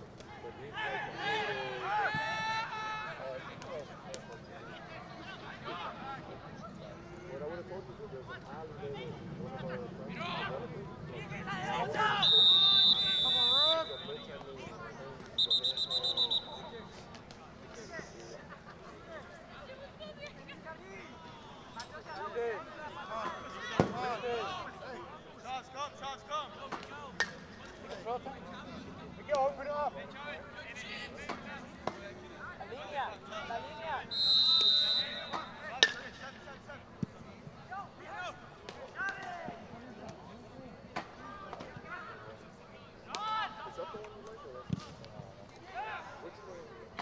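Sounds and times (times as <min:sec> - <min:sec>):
distant shouting: 0:10.1 - 0:14.7, 0:15.4 - 0:17.0
referee's whistle blast: 0:12.2 - 0:14.4, 0:15.4 - 0:17.0, 0:34.1 - 0:35.7.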